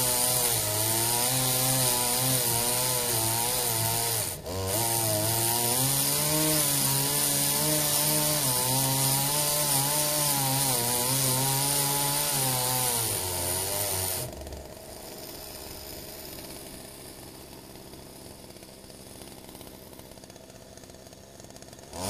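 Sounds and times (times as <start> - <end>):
chainsaw cutting wood: 0.0 - 22.0.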